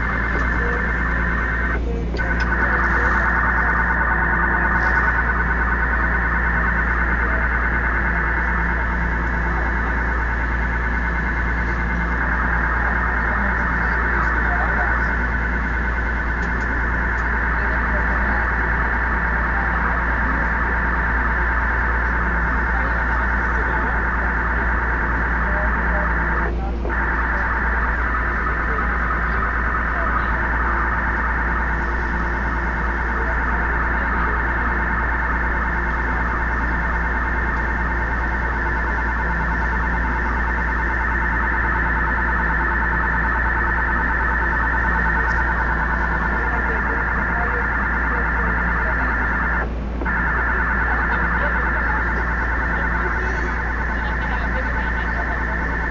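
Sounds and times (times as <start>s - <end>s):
electronic data noise from speakers: 0.0s - 55.9s
low steady hum: 0.0s - 55.9s.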